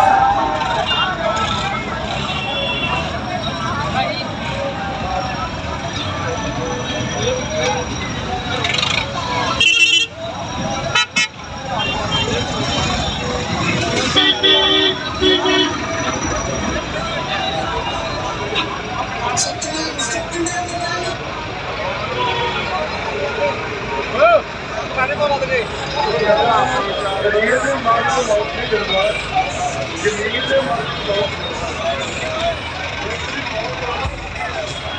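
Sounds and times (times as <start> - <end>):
crowd voices: 0.0 - 34.9
engines: 0.0 - 34.9
vehicle horns tooting: 0.6 - 3.6, 9.3 - 18.8, 22.0 - 23.0.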